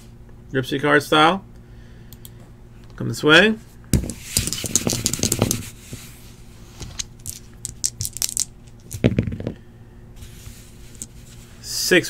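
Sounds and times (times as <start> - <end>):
dice clattering on a mat: 4.0 - 5.7, 6.8 - 9.6.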